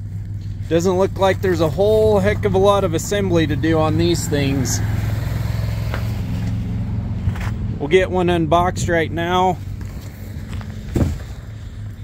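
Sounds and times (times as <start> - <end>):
low motor hum: 0.0 - 12.0.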